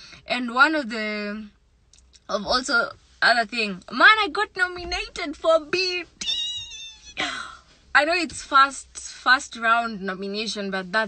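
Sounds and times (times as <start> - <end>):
woman squealing excitedly: 6.2 - 7.2.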